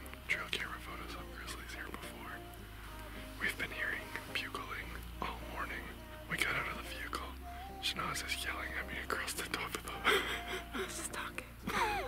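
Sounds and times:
man whispering: 0.0s - 2.4s, 3.4s - 10.0s, 10.9s - 11.6s
soft background music: 0.0s - 12.0s.

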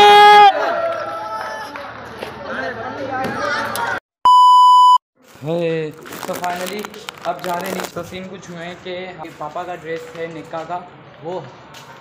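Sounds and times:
street voices: 0.0s - 4.0s, 5.2s - 12.0s
high-pitched test-tone beep: 4.3s - 5.0s.

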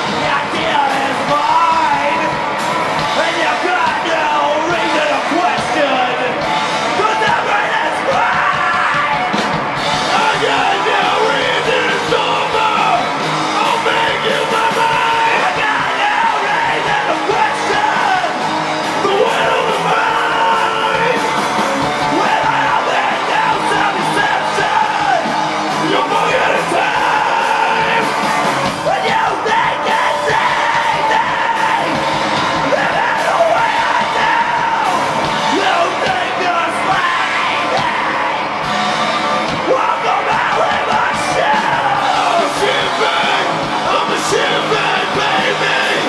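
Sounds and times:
electric guitars: 0.0s - 46.0s
live rock band playing: 0.0s - 46.0s
shouted vocals: 0.0s - 46.0s
person singing: 39.5s - 46.0s.

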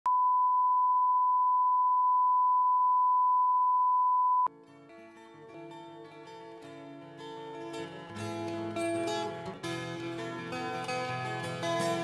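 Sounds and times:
sine-wave test tone: 0.1s - 4.5s.

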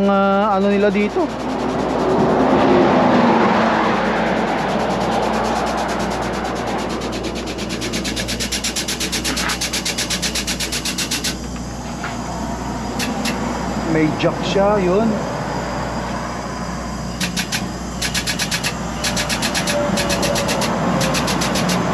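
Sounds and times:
vehicle passing: 0.7s - 9.4s
pneumatic tool pulsing: 0.7s - 13.9s, 15.8s - 21.9s.

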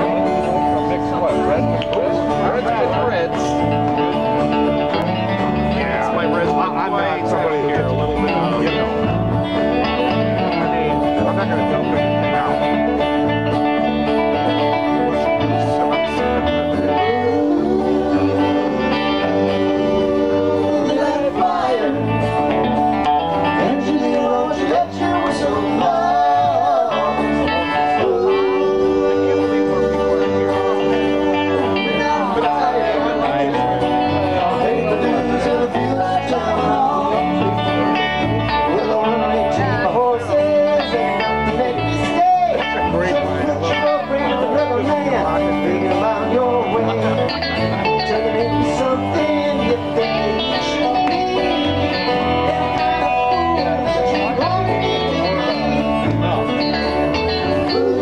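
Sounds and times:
acoustic guitars strummed and picked: 0.0s - 58.0s
electric bass line: 0.0s - 58.0s.

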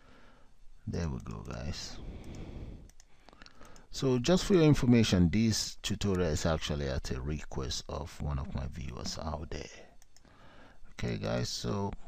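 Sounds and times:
computer mouse clicking: 2.2s - 3.9s, 10.0s - 10.3s.

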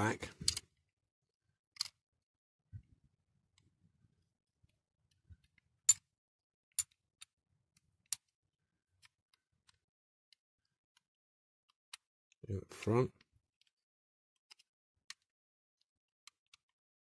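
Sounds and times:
toy parts clicking: 1.7s - 2.0s, 14.4s - 15.3s.

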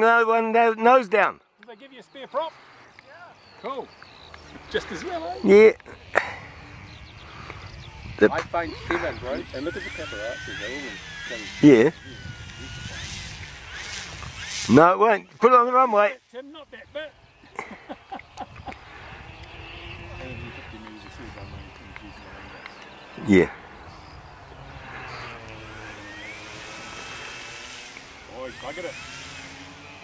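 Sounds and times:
model airplane motor whine: 3.7s - 15.8s, 16.7s - 30.0s.

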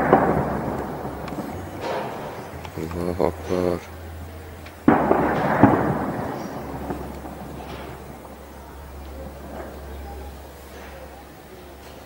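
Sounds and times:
shell explosion bangs: 0.0s - 11.2s
rolling echo: 0.0s - 12.0s.

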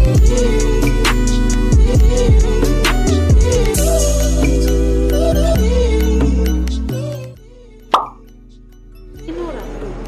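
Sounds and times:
background music: 0.0s - 10.0s
pop sound effect: 7.9s - 8.2s.

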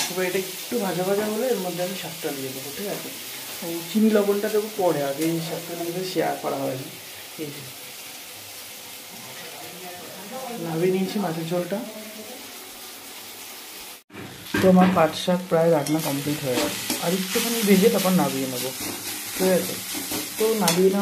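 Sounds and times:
vegetables sizzling in oil: 0.0s - 21.0s.

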